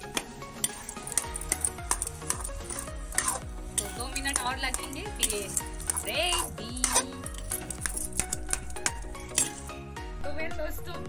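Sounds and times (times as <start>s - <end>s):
background music: 0.0s - 11.0s
metal spatula scraping pan: 0.6s - 9.8s.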